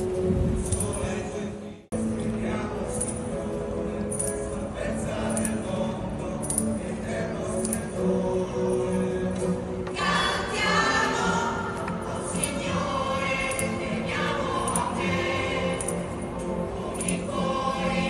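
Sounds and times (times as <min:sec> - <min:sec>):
choir singing: 0:04.8 - 0:18.0.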